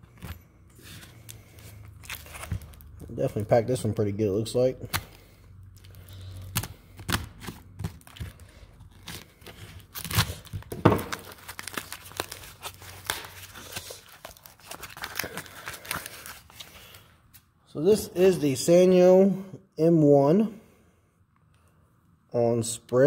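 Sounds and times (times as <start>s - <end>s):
wrapping crinkling: 0.1s - 3.5s, 5.8s - 17.4s
cardboard package tearing: 1.9s - 2.9s, 5.8s - 16.7s.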